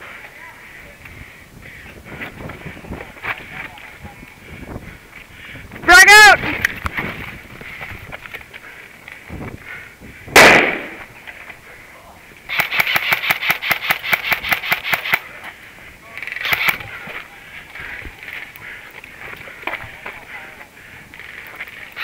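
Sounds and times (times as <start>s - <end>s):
airsoft rifle rapid fire: 10.4s - 11.0s, 12.5s - 15.2s, 16.4s - 16.8s.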